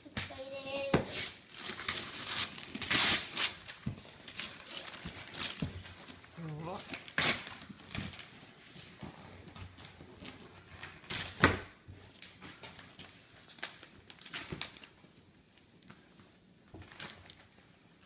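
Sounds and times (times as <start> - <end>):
wrapping paper tearing: 1.1 - 5.6, 6.2 - 8.3, 13.4 - 15.0.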